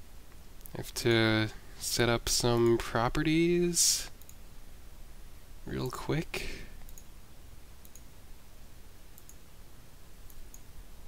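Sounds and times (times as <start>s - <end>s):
steady low hum: 0.0s - 11.0s
faint computer mouse clicks: 7.8s - 8.1s, 9.2s - 9.4s, 10.3s - 10.7s.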